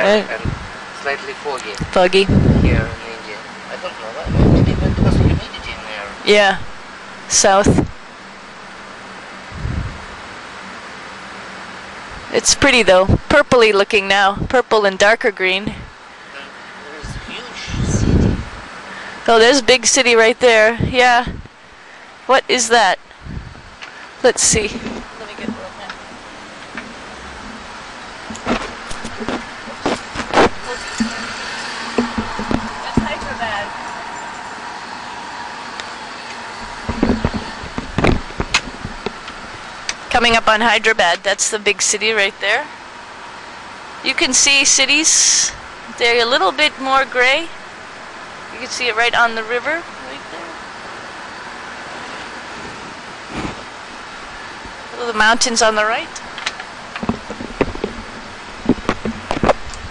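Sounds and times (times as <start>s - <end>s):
cabin background hiss: 0.0s - 37.7s
sharp knocks: 28.3s - 33.4s, 36.3s - 40.0s
soft thump: 32.0s - 33.4s.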